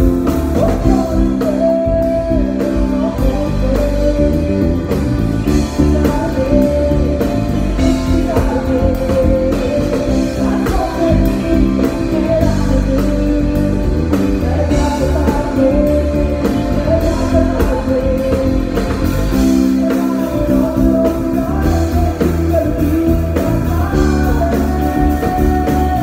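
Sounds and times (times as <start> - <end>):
drums: 0.0 - 26.0
electric bass guitar: 0.0 - 26.0
keyboards: 0.0 - 26.0
person singing: 0.0 - 26.0.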